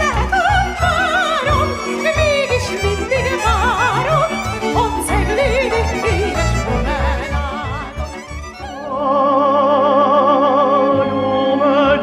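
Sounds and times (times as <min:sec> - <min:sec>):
woman singing with vibrato: 0:00.0 - 0:08.1
string band playing: 0:00.0 - 0:12.0.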